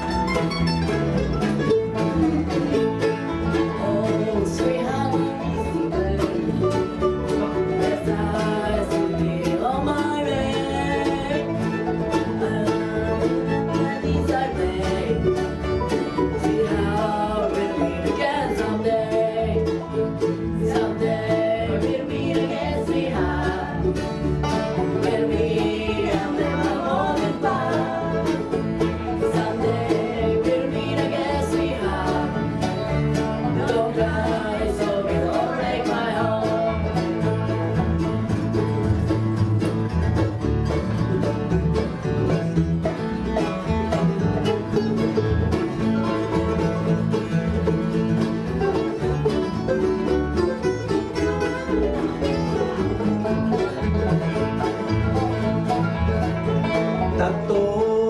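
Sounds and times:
acoustic guitars: 0.0s - 58.0s
fiddle: 0.0s - 58.0s
upright bass: 0.0s - 58.0s.

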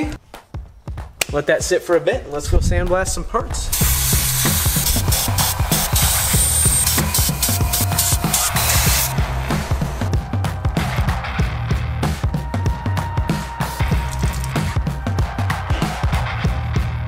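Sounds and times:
background music with steady beat: 0.0s - 2.4s, 3.7s - 17.0s
sandblaster hissing: 3.7s - 10.1s.

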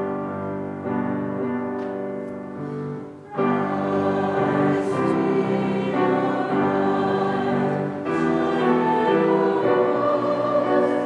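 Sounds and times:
piano accompaniment: 0.0s - 11.0s
congregation singing a hymn: 2.8s - 11.0s.

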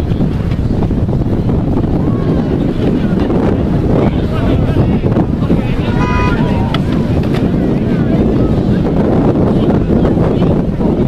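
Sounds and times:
wind buffeting microphone: 0.0s - 11.0s
distant shouting voices: 5.5s - 7.2s
brief high tone: 5.9s - 6.8s.

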